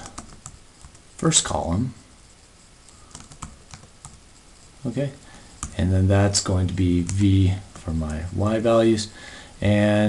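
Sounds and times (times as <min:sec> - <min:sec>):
computer keyboard keystrokes: 0:00.0 - 0:01.0, 0:03.0 - 0:04.2, 0:05.6 - 0:05.8.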